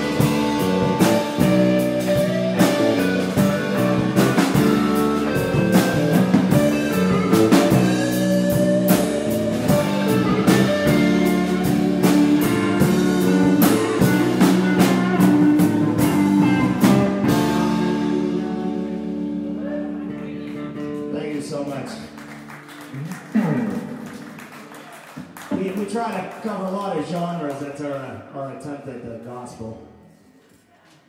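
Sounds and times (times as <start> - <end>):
live country band playing: 0.0 - 24.6.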